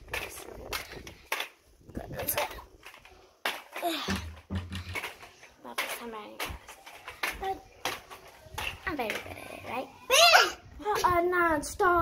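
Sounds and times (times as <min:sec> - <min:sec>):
knocks and handling noises: 0:00.0 - 0:09.4.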